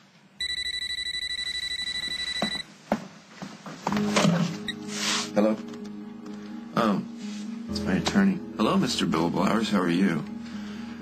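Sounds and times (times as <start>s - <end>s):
mobile phone ringing: 0.4s - 2.7s.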